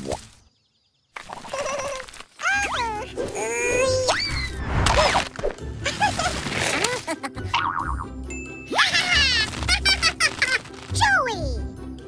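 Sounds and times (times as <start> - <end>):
background music: 2.4 - 12.0.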